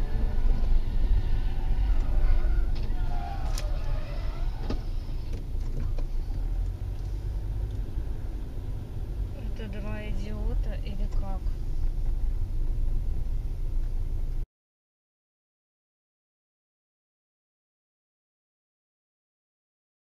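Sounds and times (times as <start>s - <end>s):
car rumbling on the move: 0.0s - 14.4s.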